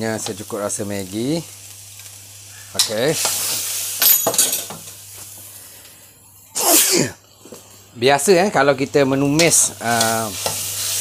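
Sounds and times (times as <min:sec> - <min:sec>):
person sneezing loudly: 0:06.6 - 0:07.2.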